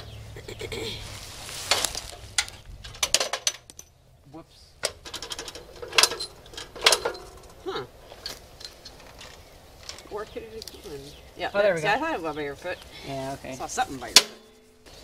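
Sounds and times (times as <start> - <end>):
metal parts clicking and clanking: 1.7 - 4.0, 4.8 - 10.2.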